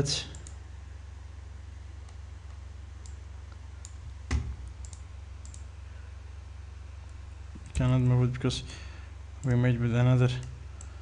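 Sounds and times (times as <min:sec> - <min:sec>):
steady low hum: 0:00.0 - 0:11.0
computer mouse clicking: 0:00.3 - 0:00.6, 0:04.6 - 0:05.7.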